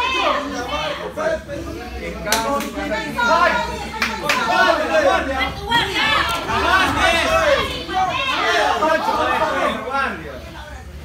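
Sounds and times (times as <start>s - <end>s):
people shouting and talking: 0.0s - 11.0s.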